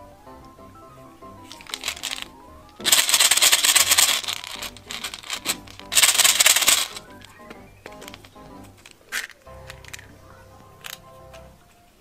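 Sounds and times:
light background music: 0:00.0 - 0:12.0
plastic beads clattering into metal tin: 0:01.5 - 0:07.1, 0:08.0 - 0:08.3, 0:09.1 - 0:10.0.

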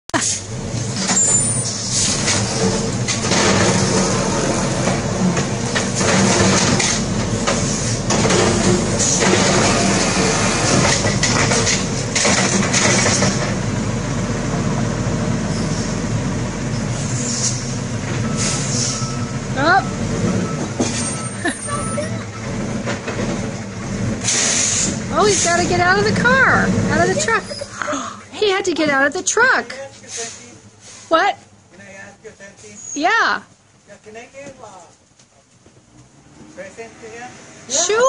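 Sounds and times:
garbage truck diesel engine running: 0:00.2 - 0:30.8.

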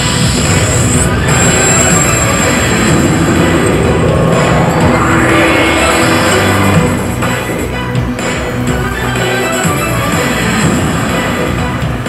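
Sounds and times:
arcade machine noisy sound effect: 0:00.0 - 0:08.0.

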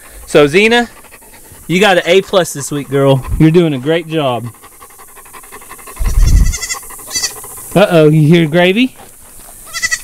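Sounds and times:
dog panting: 0:00.0 - 0:09.7
goat kid bleating: 0:06.0 - 0:07.4, 0:09.7 - 0:10.0.

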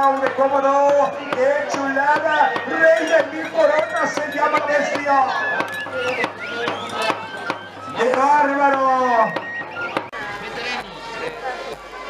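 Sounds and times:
held wind instrument notes: 0:00.0 - 0:12.0
percussion beat: 0:00.0 - 0:12.0.

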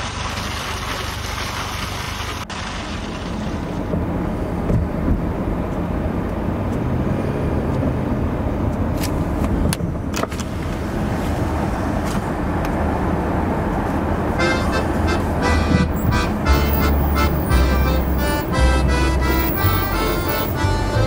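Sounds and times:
road and engine noise: 0:00.0 - 0:21.0.

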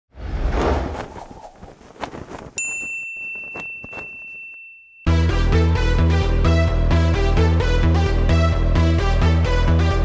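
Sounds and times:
rustling whoosh: 0:00.1 - 0:04.2
bright bell-like ding: 0:02.6 - 0:05.2.

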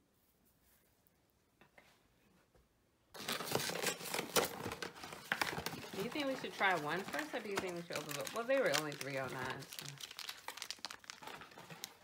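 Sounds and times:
cardboard box and paper rustling: 0:03.2 - 0:12.0.

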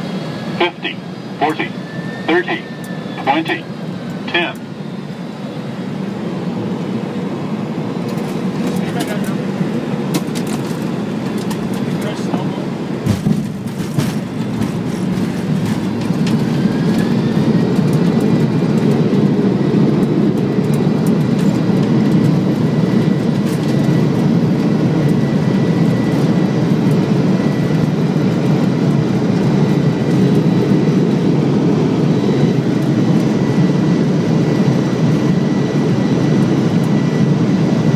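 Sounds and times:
airliner engine roar: 0:00.0 - 0:37.9
rising engine whine: 0:00.0 - 0:37.9.

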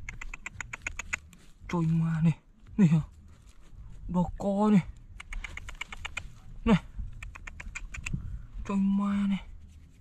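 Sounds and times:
fingers raking through stony soil: 0:00.0 - 0:04.3.

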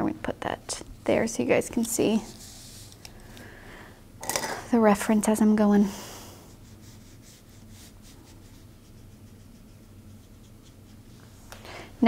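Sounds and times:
low room hum: 0:00.0 - 0:12.0
brush strokes on paper: 0:02.2 - 0:02.9, 0:06.4 - 0:11.5.

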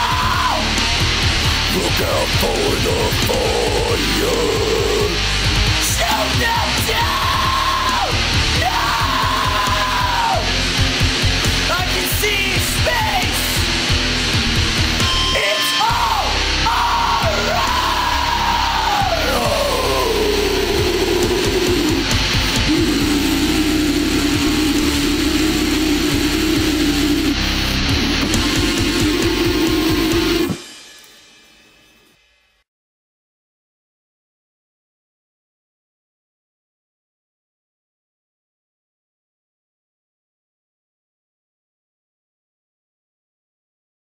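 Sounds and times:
heavy rock music: 0:00.0 - 0:31.6.

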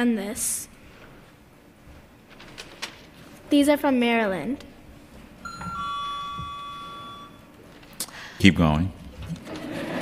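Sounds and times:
electronic two-tone chime: 0:05.4 - 0:07.5.

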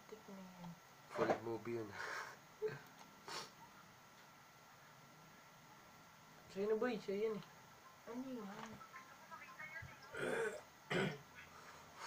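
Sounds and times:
person clearing throat: 0:10.1 - 0:11.2.

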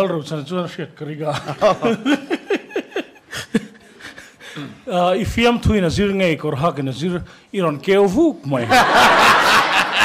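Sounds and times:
man speaking: 0:04.6 - 0:08.8
audience laughing loudly: 0:08.6 - 0:10.0.

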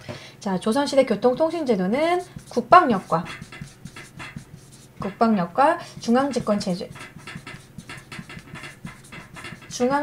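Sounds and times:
chalk scratching on blackboard: 0:01.5 - 0:10.0.

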